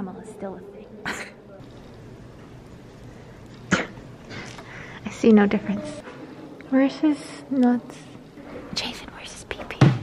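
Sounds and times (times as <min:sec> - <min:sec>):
quiet whispering: 0:08.7 - 0:09.9.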